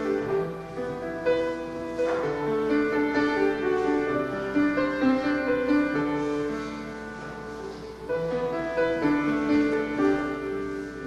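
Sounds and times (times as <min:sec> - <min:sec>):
slow keyboard worship music: 0:05.5 - 0:11.0.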